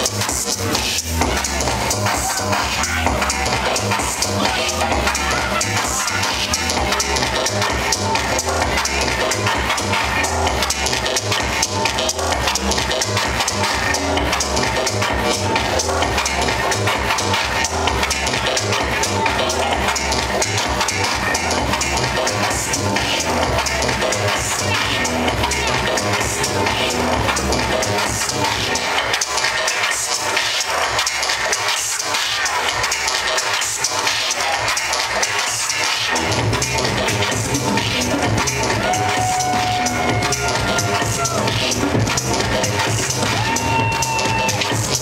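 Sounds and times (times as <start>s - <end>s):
electronic dance music: 0.0s - 45.0s.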